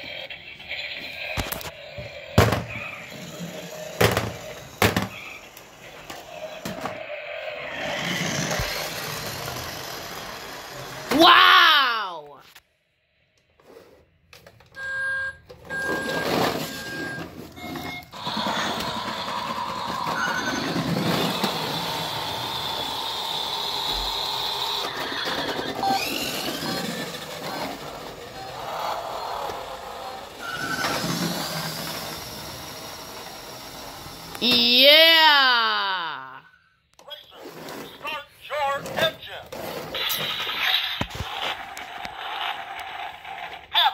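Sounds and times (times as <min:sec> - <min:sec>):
toy car engine noise with whine: 0:00.0 - 0:11.3, 0:14.8 - 0:34.9, 0:39.5 - 0:43.9.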